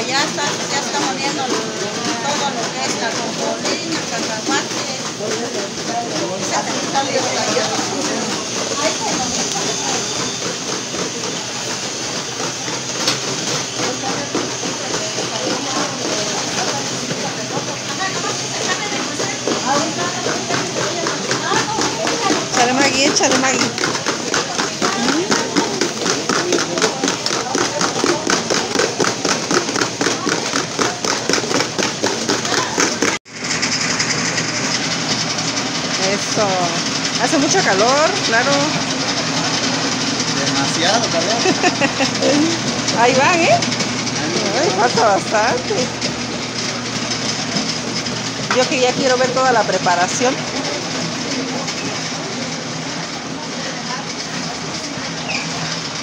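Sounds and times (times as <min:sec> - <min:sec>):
people talking: 0:00.0 - 0:33.2, 0:34.0 - 0:56.0
electric grinding mill running: 0:00.0 - 0:56.0.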